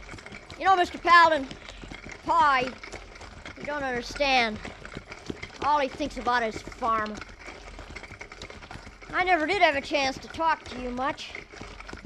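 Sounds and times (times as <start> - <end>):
horse hooves clip-clopping: 0.0 - 12.0.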